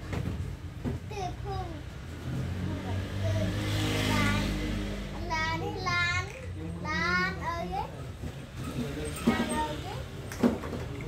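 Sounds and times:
child chattering: 2.7 - 8.0.

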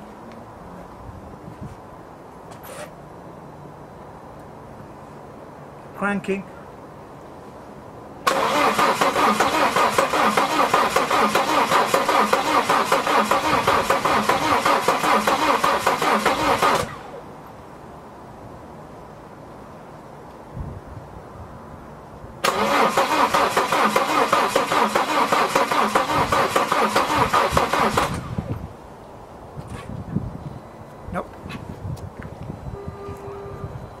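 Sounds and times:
diesel engine cranking: 8.2 - 17.2, 22.4 - 28.6.

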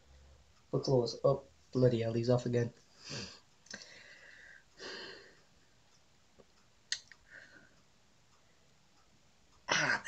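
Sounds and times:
man breathing softly: 2.9 - 5.5, 7.2 - 7.8.

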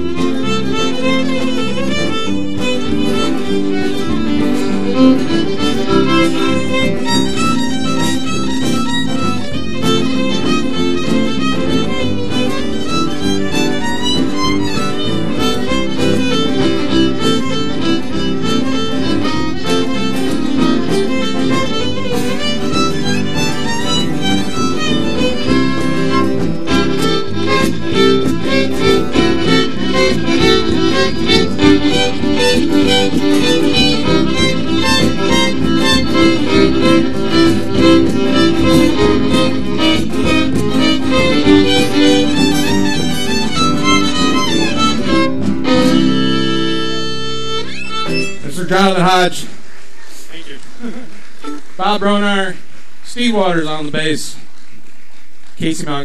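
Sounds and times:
plucked strings: 0.0 - 49.0
fiddle: 0.0 - 52.5
strummed acoustic guitar: 0.0 - 53.7.

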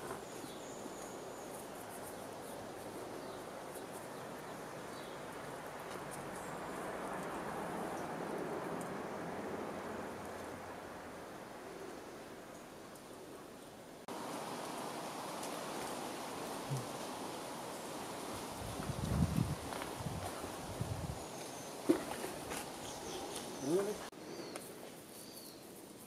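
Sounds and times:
steady background hiss: 8.8 - 26.0.

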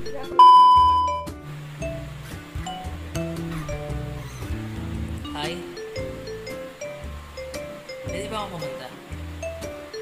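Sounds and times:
background music: 0.0 - 10.0
high test-tone beep: 0.4 - 1.3.

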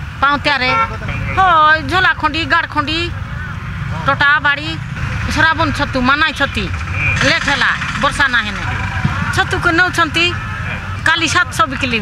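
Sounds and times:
woman speaking: 1.4 - 3.1, 4.0 - 8.7, 9.4 - 10.4, 11.0 - 12.0.

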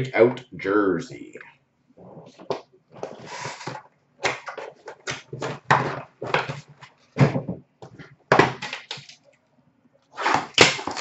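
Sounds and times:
packaging rustling: 2.1 - 7.5, 10.2 - 11.0.

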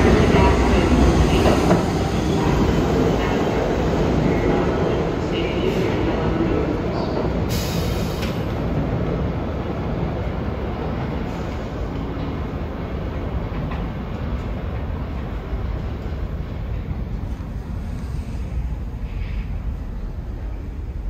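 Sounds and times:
subway train rumbling: 0.0 - 21.0.

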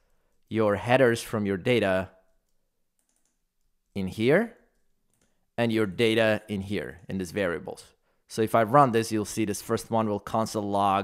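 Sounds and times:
man talking: 0.5 - 2.2, 3.9 - 4.7, 5.6 - 11.0
faint keyboard clicks: 2.2 - 3.7, 4.6 - 5.4.

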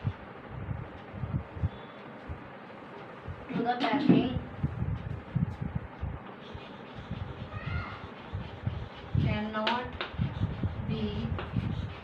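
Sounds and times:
chalk tapping and scraping: 6.2 - 12.0
faint high-pitched cry: 7.5 - 8.1.

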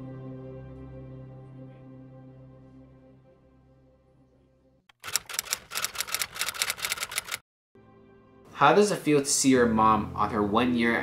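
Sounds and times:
typewriter keys clacking: 4.9 - 7.4.

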